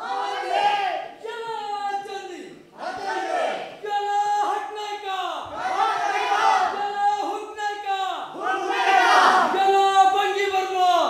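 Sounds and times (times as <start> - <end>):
group shouting together: 0.0 - 1.2, 2.8 - 3.8, 5.5 - 6.8, 8.4 - 9.6.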